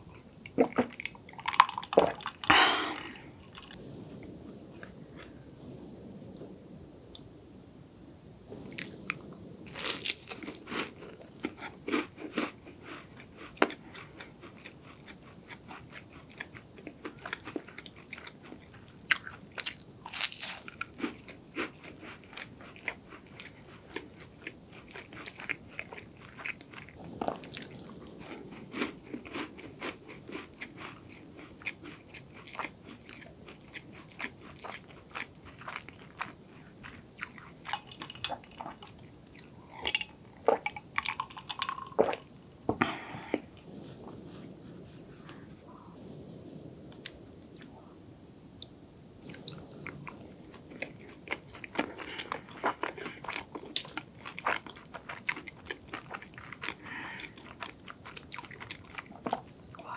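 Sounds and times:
pastry crunching while chewed: 9.7 - 42.3, 49.2 - 59.9.

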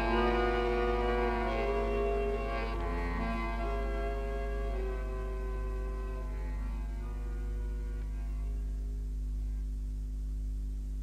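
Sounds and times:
tango music chord: 0.0 - 9.6
low mains hum: 0.0 - 11.0.

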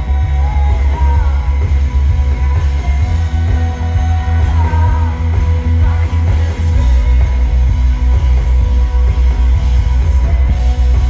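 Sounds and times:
bass pulsing: 0.0 - 11.0
live rock band playing: 0.0 - 11.0.

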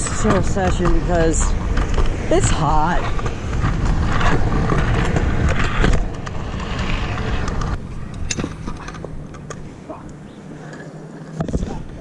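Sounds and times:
scooter wheels rolling on pavement: 0.0 - 12.0
wind rumbling on microphone: 0.0 - 12.0.

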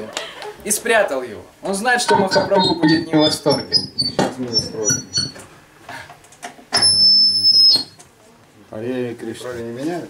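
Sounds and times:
high-pitched electronic tone: 2.1 - 5.4, 6.8 - 7.9.

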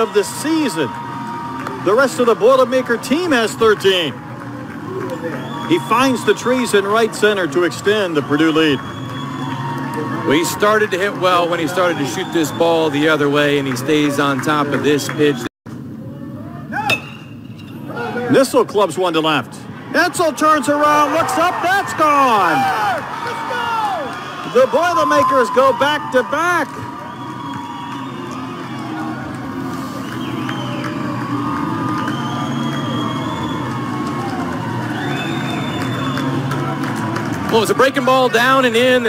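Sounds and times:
crowd noise: 0.0 - 39.0
aluminum bat hitting ball: 16.8 - 17.5.

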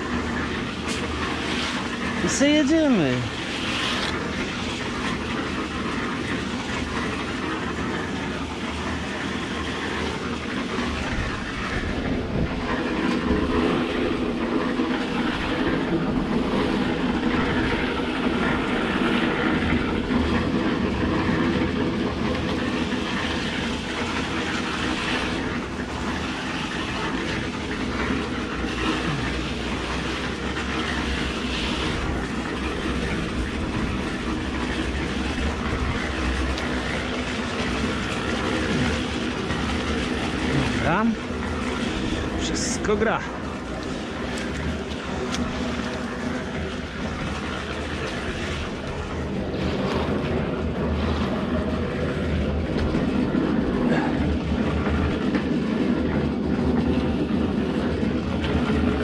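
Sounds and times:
straightedge scraping wet concrete: 0.0 - 19.9, 22.4 - 56.2.

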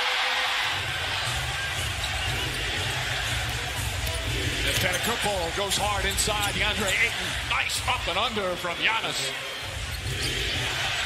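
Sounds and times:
music: 0.0 - 8.7, 9.3 - 11.0
arena crowd noise: 0.0 - 11.0.

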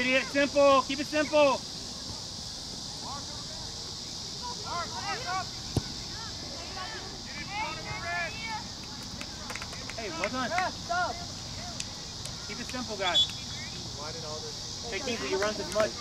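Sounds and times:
distant shouts and calls: 0.0 - 16.0
high insect drone: 0.0 - 16.0.

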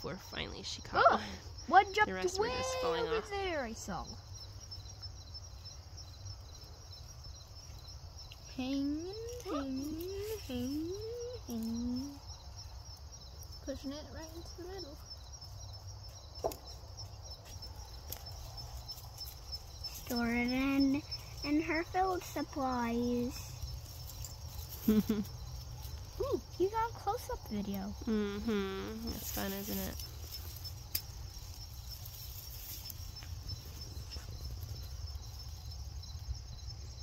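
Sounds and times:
insect chirping: 0.0 - 37.0.

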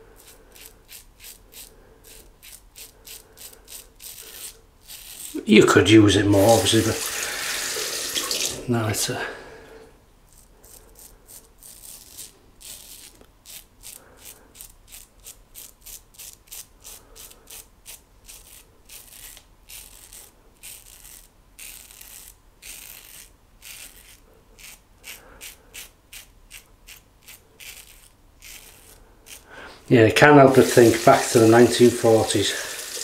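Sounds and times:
razor scraping stubble: 0.2 - 8.6, 10.3 - 29.5, 30.3 - 33.0.

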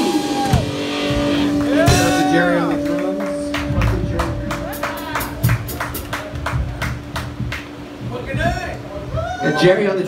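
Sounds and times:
cymbal and drum hits: 0.0 - 6.1
rock band playing: 0.0 - 9.6.

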